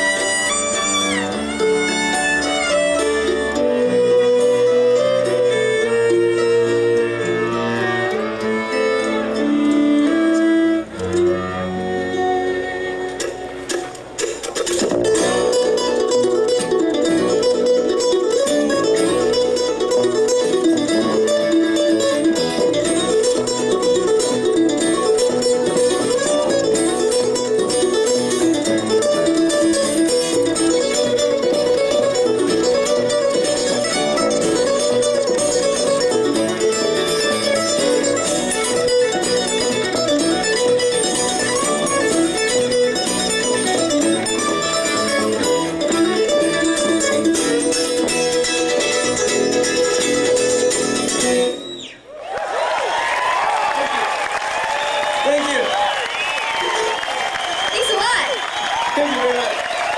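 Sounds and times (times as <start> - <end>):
bluegrass string band playing: 0.0 - 59.9
applause: 52.1 - 59.9.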